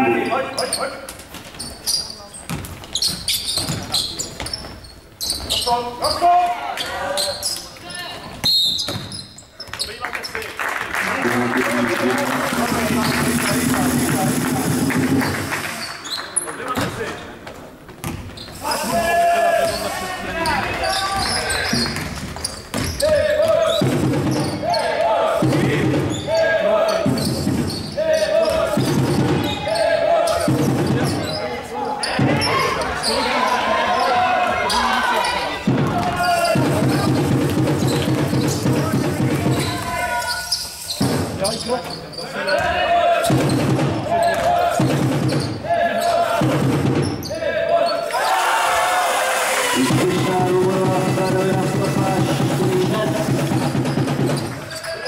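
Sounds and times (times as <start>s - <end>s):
basketball bouncing on court: 2.5s - 5.6s, 17.9s - 18.4s, 21.2s - 24.6s
loud repeating pattern: 12.5s - 15.6s, 49.4s - 54.5s.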